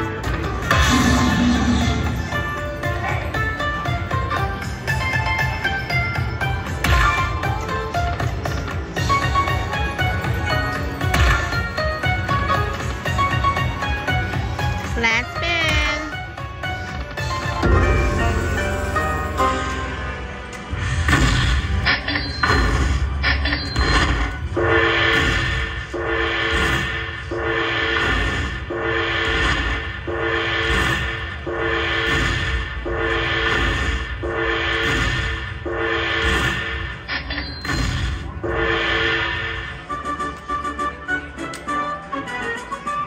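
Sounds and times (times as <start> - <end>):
slot machine bonus music: 0.0 - 25.2
repeating chime phrase: 17.6 - 20.5
sharp hits: 17.6 - 23.1.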